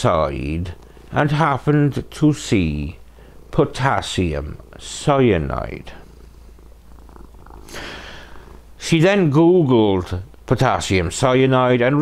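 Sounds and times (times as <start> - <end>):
cat purring: 0.4 - 10.3
cat hissing: 6.9 - 8.7.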